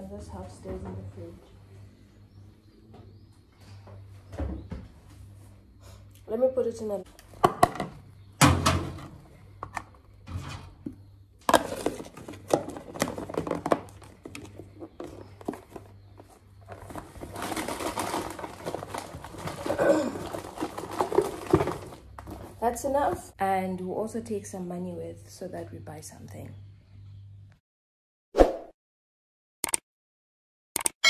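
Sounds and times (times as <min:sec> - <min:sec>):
fabric bag rustling: 0:16.6 - 0:22.6.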